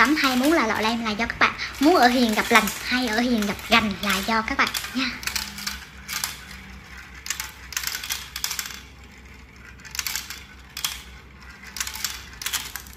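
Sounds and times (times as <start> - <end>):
marbles rattling down plastic run: 0.0 - 12.9.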